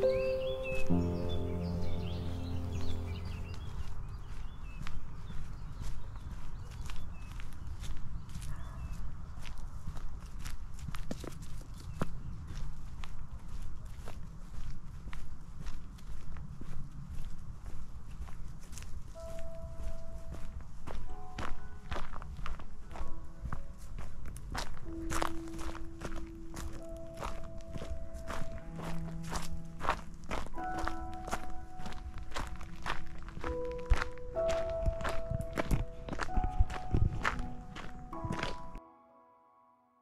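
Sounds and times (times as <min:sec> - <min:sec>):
soft music with long held notes: 0:00.0 - 0:04.0, 0:18.7 - 0:40.0
footsteps on gravel: 0:00.0 - 0:38.8.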